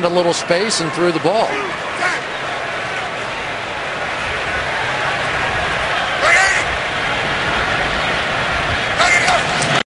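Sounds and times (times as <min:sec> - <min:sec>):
stadium crowd roar: 0:00.0 - 0:09.8.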